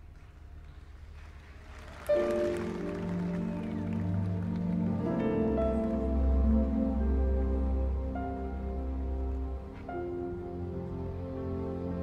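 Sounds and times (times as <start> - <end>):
orchestra with piano: 1.0 - 12.0.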